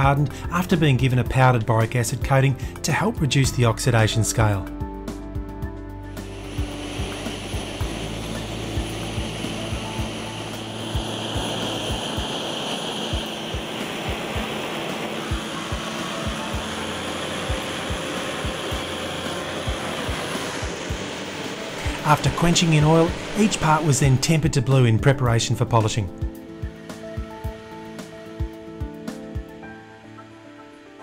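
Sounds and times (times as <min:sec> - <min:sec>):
gas torch flame hissing: 0:06.0 - 0:25.1, 0:25.9 - 0:30.0.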